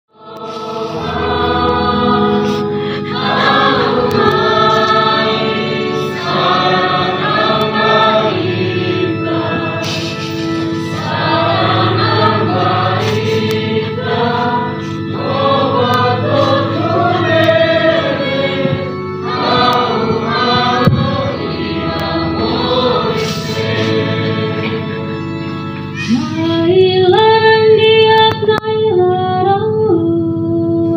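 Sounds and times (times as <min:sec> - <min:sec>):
men singing together: 0:00.4 - 0:24.9
sustained low notes: 0:00.4 - 0:28.1.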